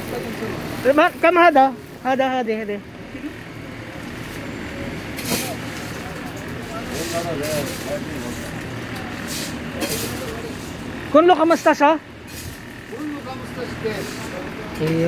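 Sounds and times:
faint voices: 0:00.0 - 0:15.0.

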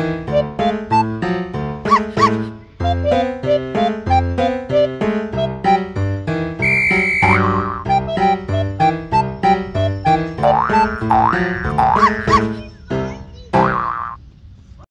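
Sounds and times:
upbeat children's keyboard music: 0:00.0 - 0:14.2.

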